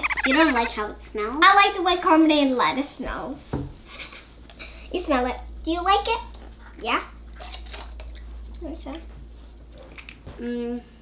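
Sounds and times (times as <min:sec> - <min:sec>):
brief voice sound: 0:00.0 - 0:00.7.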